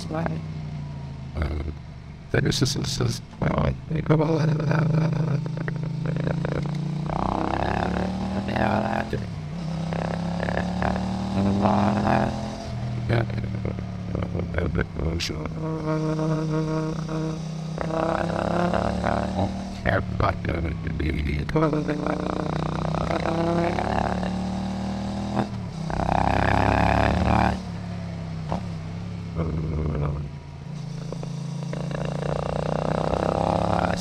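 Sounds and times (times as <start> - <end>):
vocal-like droning sliding in pitch: 4.4 - 24.7, 29.3 - 34.0.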